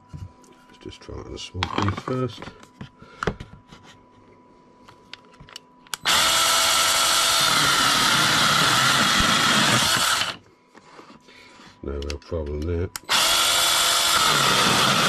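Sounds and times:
mini chainsaw cutting wood: 6.0s - 10.4s, 13.1s - 15.0s.

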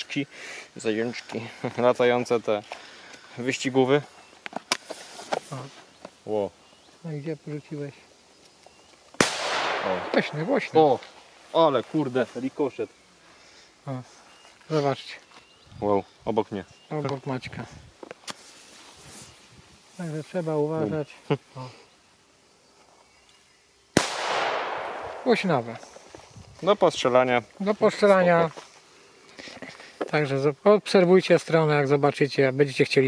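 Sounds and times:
firecracker bang with echo: 9.2s - 10.6s, 24.0s - 25.5s.

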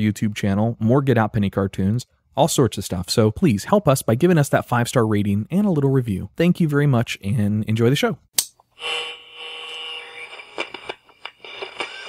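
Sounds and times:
radio crackles and clicks: 8.8s - 12.0s
radio static hiss: 9.7s - 12.0s.

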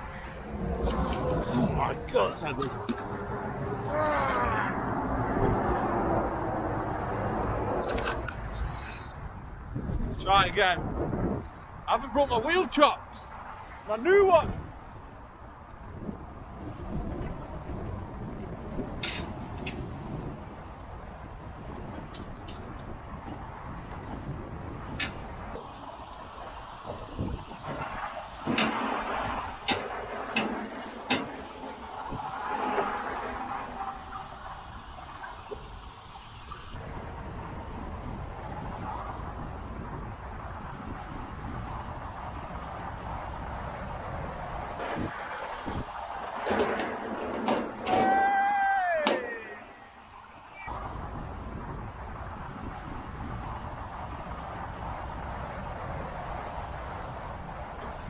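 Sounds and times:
motorway traffic: 0.0s - 58.0s
wind buffeting microphone: 0.0s - 58.0s.

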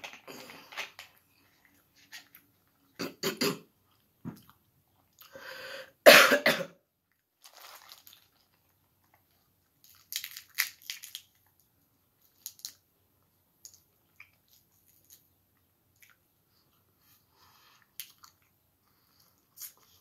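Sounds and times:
person coughing: 3.0s - 3.7s, 6.0s - 6.8s
crab shell cracking: 9.8s - 11.4s.

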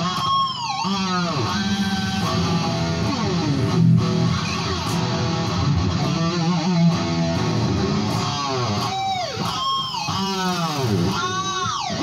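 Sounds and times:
electric guitar pitch swoops: 0.0s - 12.0s.

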